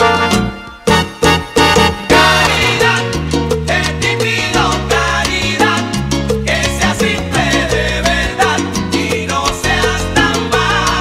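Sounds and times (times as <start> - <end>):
instrumental salsa music: 0.0 - 11.0.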